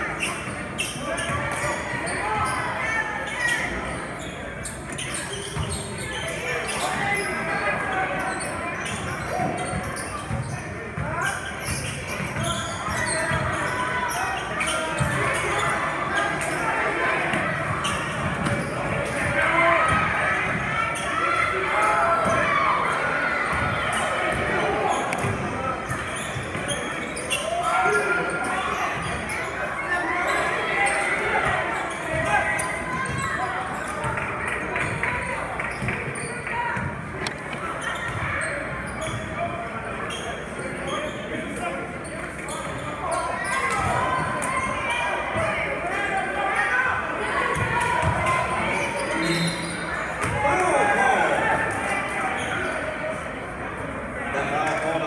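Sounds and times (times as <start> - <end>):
spectators chattering and shouting: 0.0 - 55.0.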